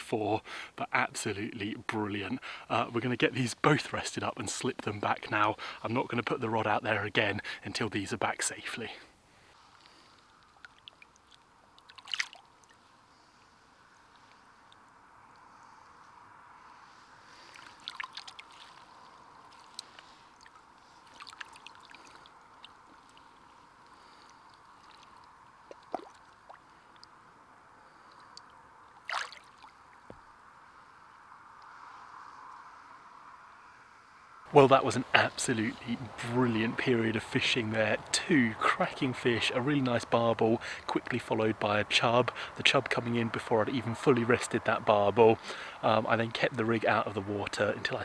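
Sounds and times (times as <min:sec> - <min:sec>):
steady background of water: 0:00.0 - 0:48.0
fish splashing in water: 0:09.9 - 0:12.8, 0:17.3 - 0:27.1, 0:27.9 - 0:30.1.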